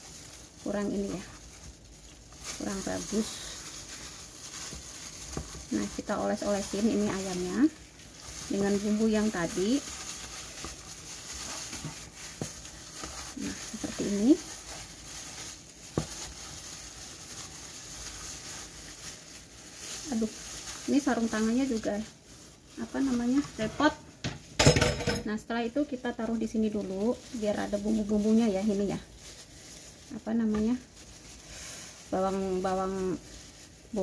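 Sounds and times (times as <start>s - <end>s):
plastic gloves crinkling: 0.0s - 34.0s.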